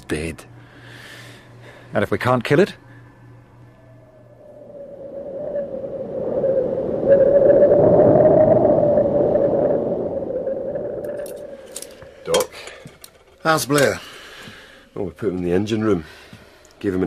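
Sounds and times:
eerie drone: 0.6 - 13.8.

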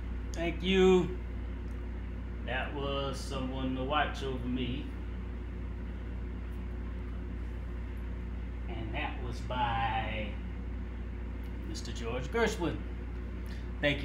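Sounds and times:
steady low hum: 0.0 - 14.0.

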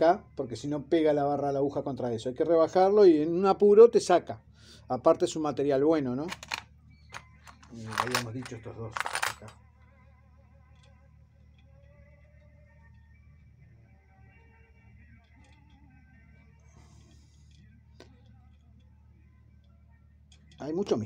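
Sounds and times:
faint background music: 0.0 - 21.0
metal part click: 6.3 - 9.5.

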